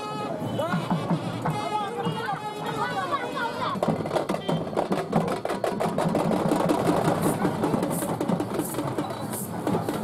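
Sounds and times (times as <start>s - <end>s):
fast even drumming: 3.8s - 10.0s.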